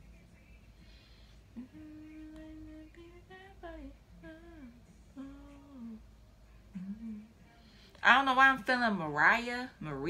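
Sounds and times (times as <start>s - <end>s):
woman humming softly: 1.5s - 6.0s, 6.7s - 7.5s.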